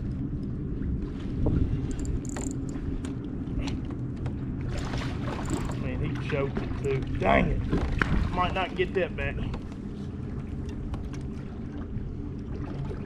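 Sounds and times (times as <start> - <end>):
water lapping against kayak: 0.0 - 13.0
wind rumbling on microphone: 0.0 - 13.0.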